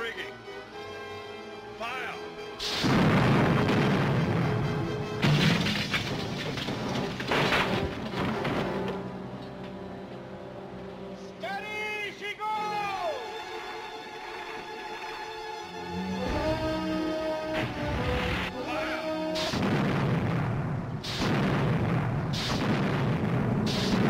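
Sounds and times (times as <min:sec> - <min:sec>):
orchestral film score: 0:00.0 - 0:05.4, 0:07.4 - 0:21.2
loud crashes: 0:02.6 - 0:09.0, 0:19.4 - 0:24.0.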